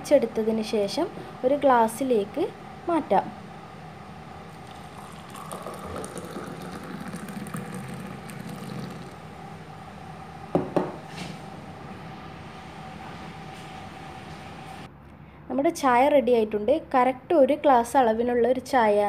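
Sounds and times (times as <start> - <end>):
tea pouring into a glass: 4.5 - 9.3.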